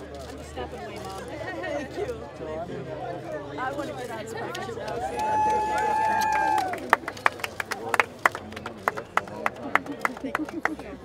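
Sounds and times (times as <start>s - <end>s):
people clapping: 4.4s - 11.0s.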